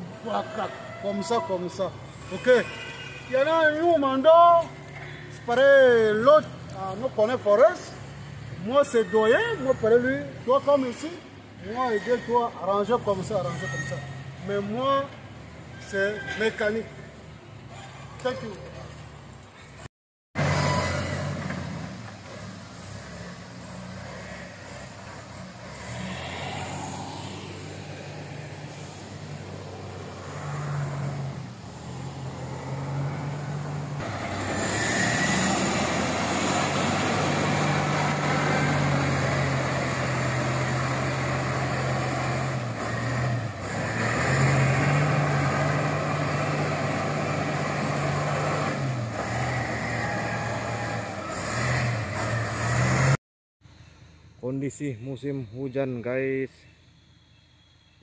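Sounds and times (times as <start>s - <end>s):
wheel loader diesel engine: 20.4s - 27.0s, 27.6s - 53.2s.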